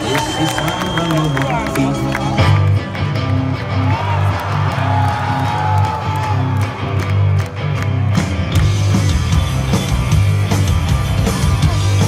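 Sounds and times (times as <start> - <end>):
crowd cheering: 0.0 - 10.0
bass line: 0.0 - 12.0
electric guitar: 0.0 - 12.0.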